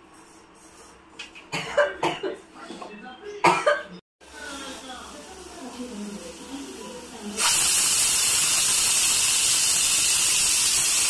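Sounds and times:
person coughing: 0:01.5 - 0:02.4, 0:03.4 - 0:04.0
pressure cooker steam hissing: 0:04.4 - 0:11.0.

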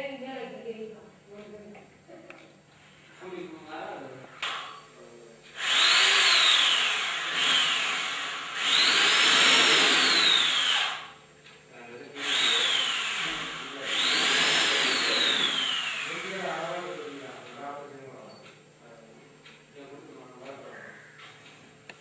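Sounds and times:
electric power drill whining: 0:05.6 - 0:11.2, 0:12.2 - 0:17.2.

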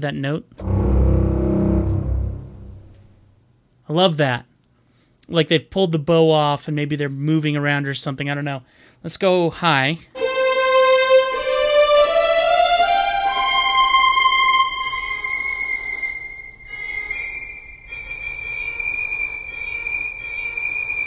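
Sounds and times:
sustained bowed string notes: 0:00.6 - 0:03.2, 0:10.2 - 0:17.9.

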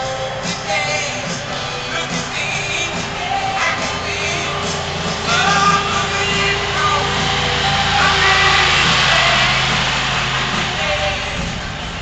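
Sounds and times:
faint music: 0:00.0 - 0:12.0
small cart engine running: 0:00.0 - 0:12.0.

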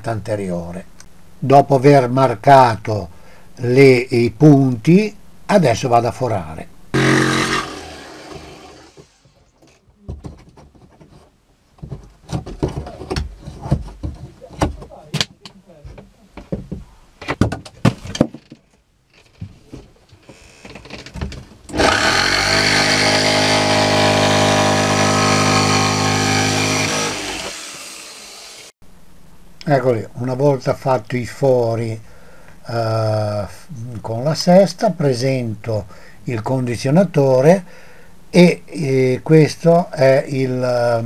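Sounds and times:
electric power tool motor: 0:07.0 - 0:09.3, 0:21.7 - 0:28.7.

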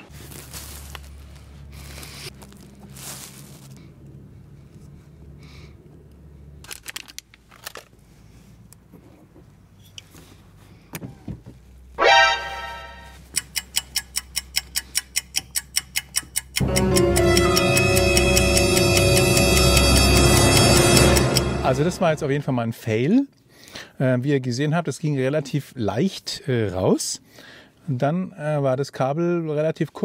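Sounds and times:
sound effect sting: 0:12.0 - 0:13.1, 0:16.6 - 0:22.6
music: 0:12.0 - 0:13.2, 0:16.6 - 0:22.5
fast ticking: 0:13.3 - 0:22.4.

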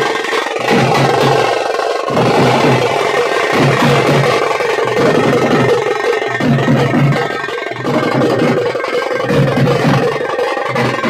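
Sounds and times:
large drums beaten: 0:00.0 - 0:11.0
small drum played with sticks: 0:00.0 - 0:11.0.

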